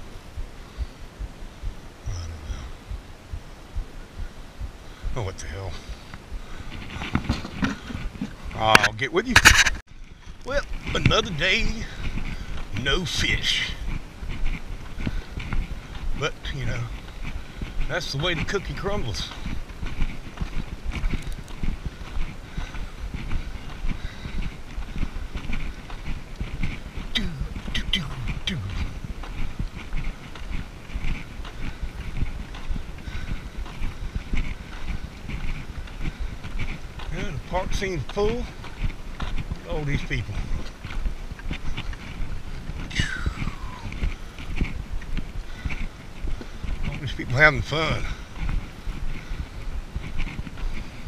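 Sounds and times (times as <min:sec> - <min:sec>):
footsteps on gravel: 0:00.0 - 0:51.0.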